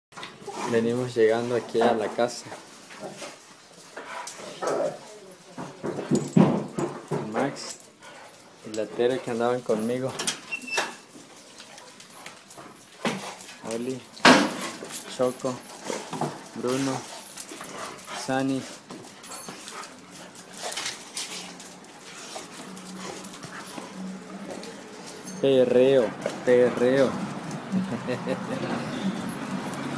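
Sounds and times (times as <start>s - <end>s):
paws clicking on hard floor: 11.0s - 29.9s
dogs barking and whimpering: 14.6s - 29.9s
dogs whimpering: 18.8s - 25.4s.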